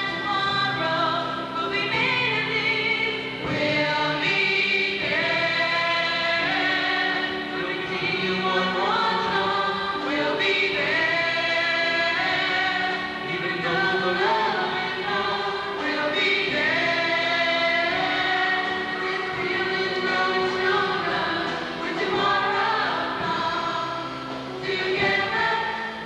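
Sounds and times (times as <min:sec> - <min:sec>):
choir singing held notes: 0:00.0 - 0:26.0.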